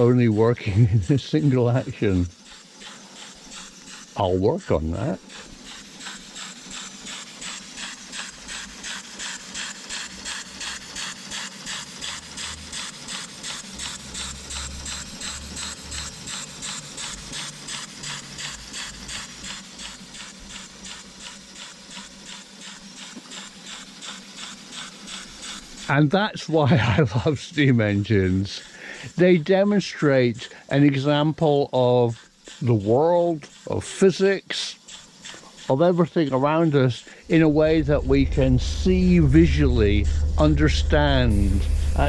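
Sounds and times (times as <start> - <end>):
model steam engine hissing exhaust puffs: 0.0 - 42.0.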